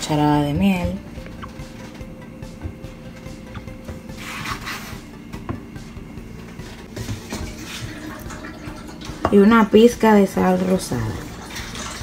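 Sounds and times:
steady low hum: 0:00.0 - 0:11.1
spoon scraping bowl: 0:04.1 - 0:05.0.

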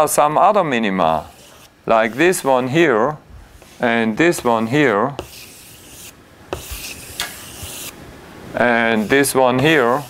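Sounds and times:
chalk rubbing on a chalkboard: 0:01.1 - 0:02.6, 0:03.6 - 0:08.0, 0:08.7 - 0:10.0.

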